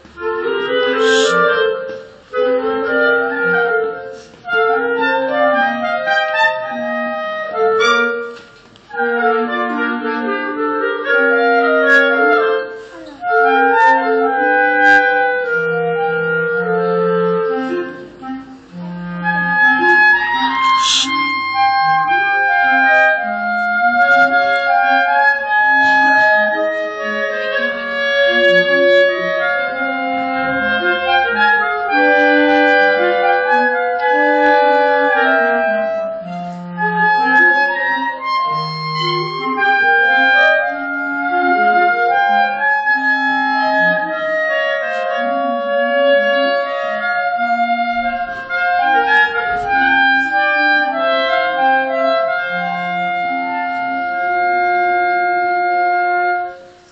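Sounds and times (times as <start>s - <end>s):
clarinet quartet playing: 0.2s - 56.9s.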